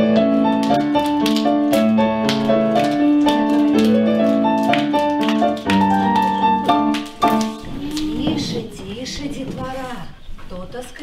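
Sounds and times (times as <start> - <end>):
piano playing dance tune chords: 0.0 - 8.5.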